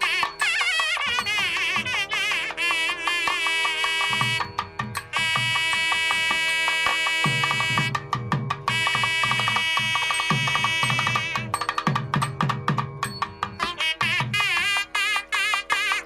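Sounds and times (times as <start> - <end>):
nadaswaram long held notes: 0.0 - 16.0
thavil drum strokes: 0.0 - 16.0.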